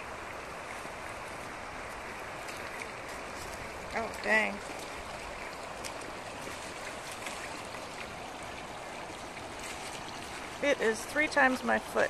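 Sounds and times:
river water over gravel: 0.0 - 12.0.

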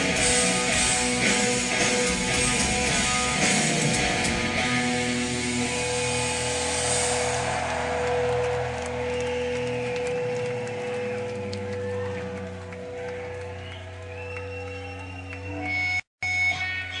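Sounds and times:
live rock band music: 0.0 - 12.4.

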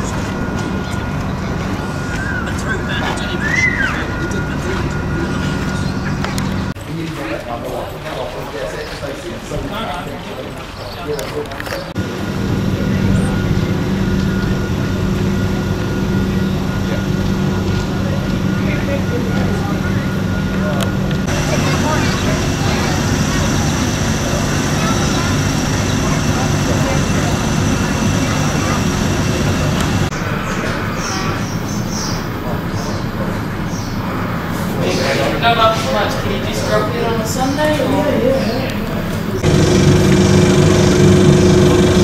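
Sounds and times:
diesel engines idling: 0.0 - 6.8, 11.9 - 42.0
thin high whine: 12.0 - 33.0.

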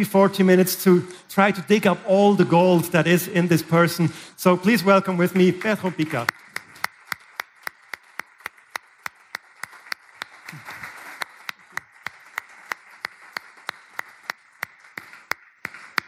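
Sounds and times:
audience clapping in rhythm: 4.5 - 16.0.

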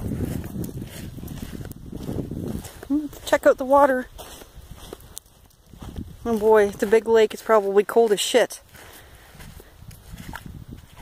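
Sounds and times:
footsteps: 0.0 - 11.0
phone microphone handling noise: 9.9 - 11.0.

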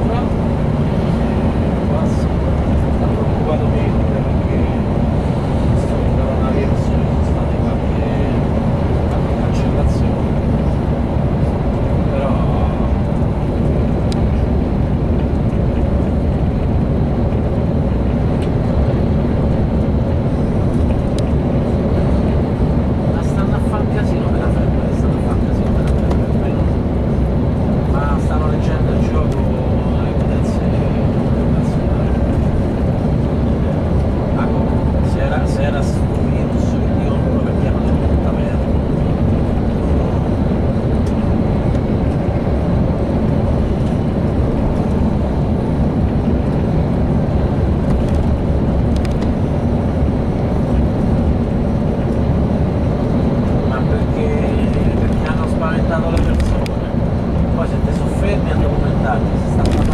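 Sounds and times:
coach engine and tyre drone: 0.0 - 59.9.

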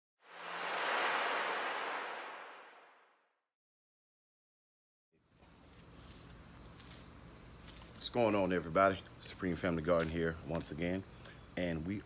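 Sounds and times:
whoosh: 0.2 - 3.2.

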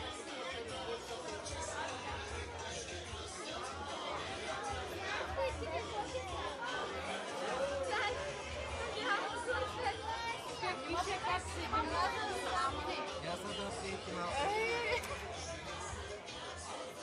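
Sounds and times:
overlapping voices talking: 0.0 - 17.0.

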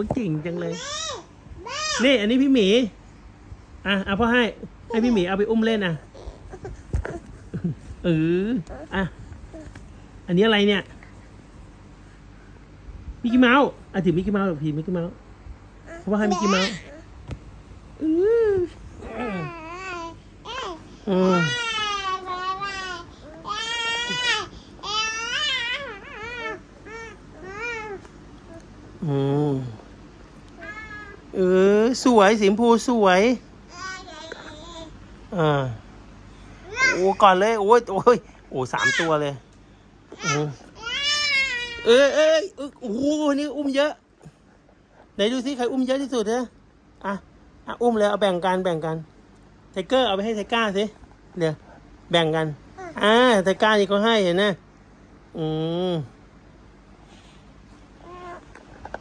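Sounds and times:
toddler high-pitched vocalisation: 0.7 - 2.0, 15.9 - 17.1, 19.0 - 28.1, 36.6 - 37.2, 40.2 - 41.9.

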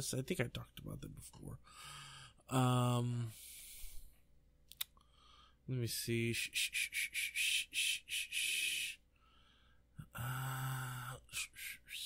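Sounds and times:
person saying uh: 2.5 - 3.4, 5.7 - 9.0.

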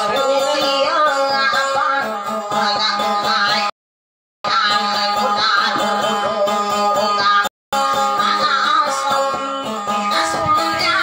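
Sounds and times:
plucked acoustic guitar: 0.0 - 3.7, 4.5 - 11.0
woman singing: 0.0 - 3.7, 4.5 - 11.0.

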